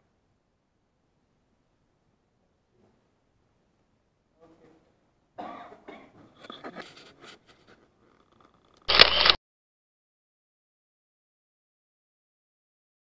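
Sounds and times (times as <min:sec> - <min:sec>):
camcorder handling noise: 0:08.8 - 0:09.4
sharp clicks: 0:08.8 - 0:09.4.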